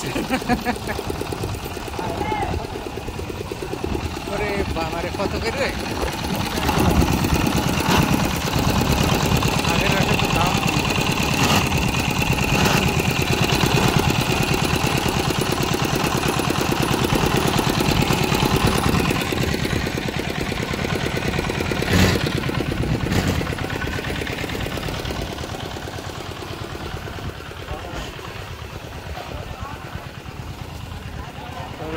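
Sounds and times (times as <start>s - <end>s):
diesel engine running: 0.0s - 31.9s.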